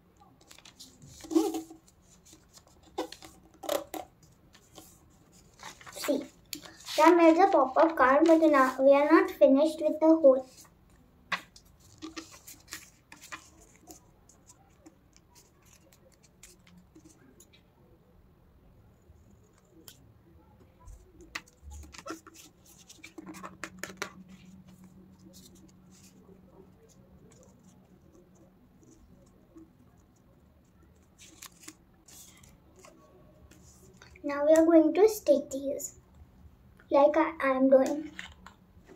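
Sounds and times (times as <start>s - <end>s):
paper rustling and crackling: 0.4s - 8.9s, 11.3s - 17.5s, 20.8s - 29.6s, 30.7s - 34.2s.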